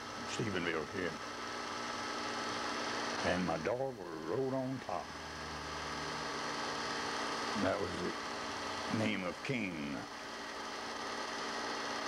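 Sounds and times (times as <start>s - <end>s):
old recording hum and hiss: 0.0s - 12.0s.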